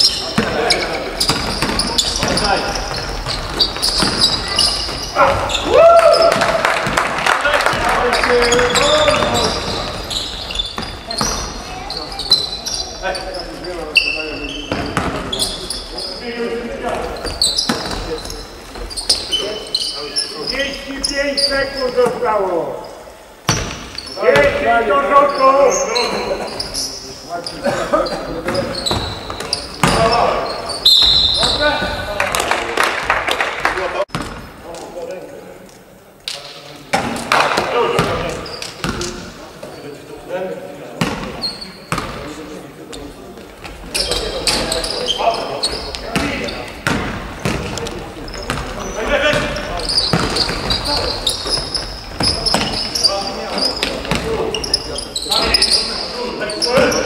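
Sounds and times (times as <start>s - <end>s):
players calling and shouting: 0.0s - 35.4s, 36.8s - 57.0s
basketball bouncing on wooden court: 0.3s - 5.6s, 7.7s - 12.8s, 14.7s - 15.4s, 16.9s - 18.2s, 23.5s - 24.6s, 28.4s - 30.2s, 34.1s - 34.5s, 36.9s - 39.1s, 41.0s - 42.2s, 46.1s - 53.0s, 53.8s - 54.4s.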